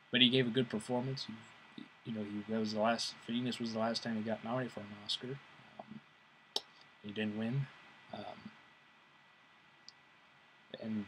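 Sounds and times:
man talking: 0.0s - 6.0s, 7.0s - 8.5s, 10.8s - 11.0s.

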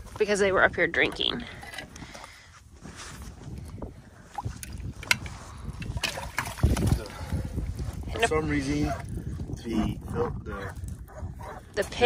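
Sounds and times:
water sloshing and splashing: 0.0s - 10.2s
wind buffeting microphone: 0.0s - 12.0s.

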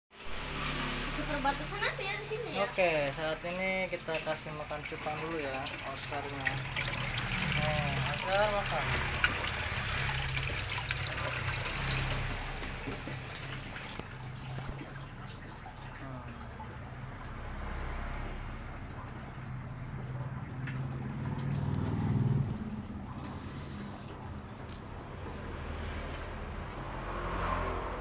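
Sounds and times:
water trickling into aquarium: 0.2s - 28.0s.

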